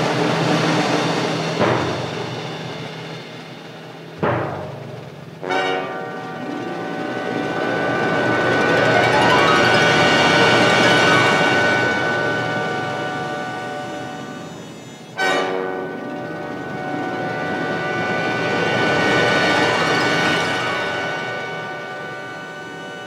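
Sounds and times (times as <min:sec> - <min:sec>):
orchestral film music: 0:05.4 - 0:22.8.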